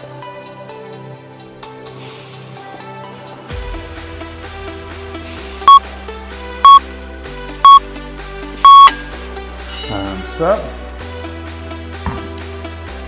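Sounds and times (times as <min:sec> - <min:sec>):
electronic background music: 0:00.2 - 0:13.0
timer beeps: 0:06.6 - 0:06.8, 0:08.6 - 0:09.1.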